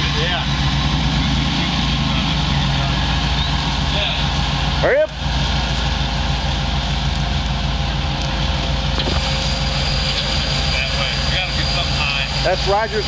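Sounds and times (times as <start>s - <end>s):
vehicle engine idling: 0.0s - 13.0s
thin high whine: 9.0s - 13.0s.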